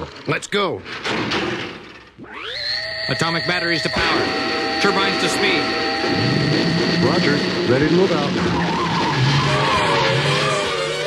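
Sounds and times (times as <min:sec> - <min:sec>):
thud: 0:00.9 - 0:02.1
turbine whine spooling up: 0:02.2 - 0:11.0.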